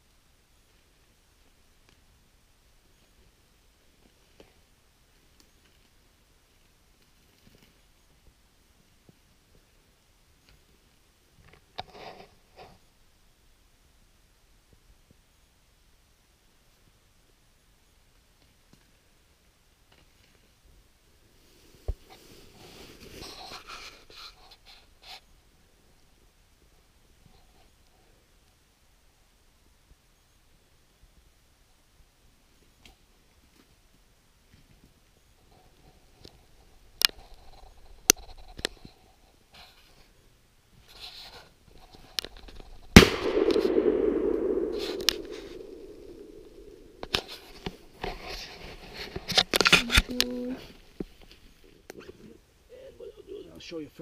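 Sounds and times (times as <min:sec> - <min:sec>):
faint rustling and scraping: 0:02.8 - 0:13.0, 0:19.9 - 0:28.3, 0:32.5 - 0:52.5
clicks and rustling: 0:40.9 - 0:50.3
shotgun shot echoing: 0:43.0 - 0:47.2
sharp thump: 0:43.0 - 0:47.3.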